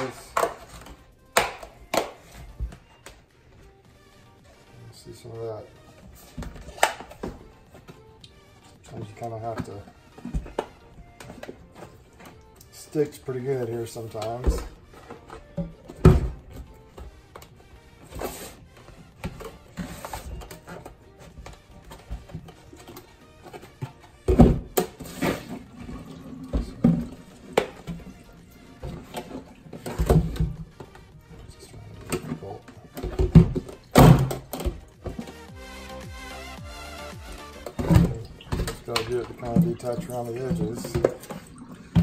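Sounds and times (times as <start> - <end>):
background music: 0.0 - 42.0.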